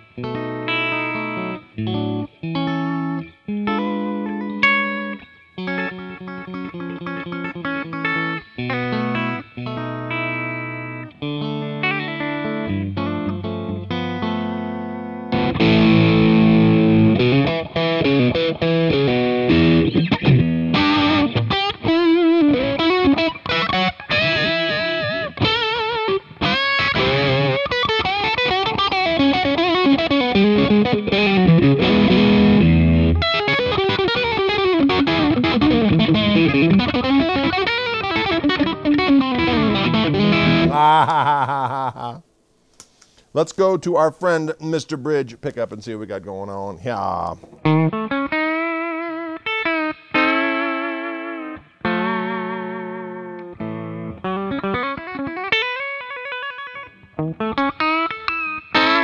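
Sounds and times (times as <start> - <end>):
electric guitar through an amp: 0.0 - 42.2, 44.7 - 59.0.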